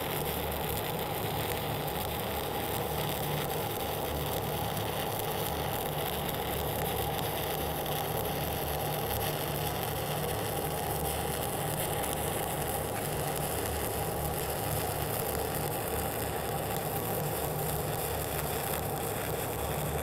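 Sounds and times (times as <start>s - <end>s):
welding arc crackling and hissing: 0.0s - 20.0s.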